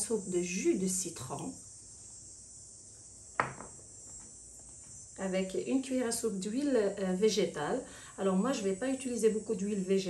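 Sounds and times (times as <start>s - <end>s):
faint room hiss: 0.0s - 10.0s
ceramic dish set down: 3.4s - 3.8s.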